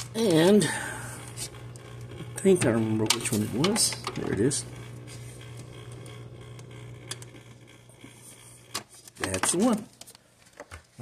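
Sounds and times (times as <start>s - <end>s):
aquarium filter humming: 0.0s - 10.2s.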